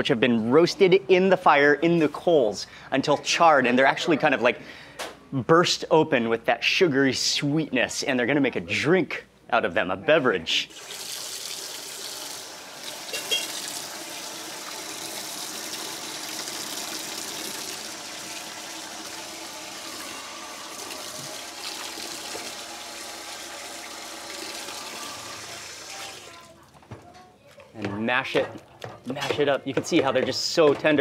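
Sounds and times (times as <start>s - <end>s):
tap water pouring into steel sink: 10.7s - 26.5s.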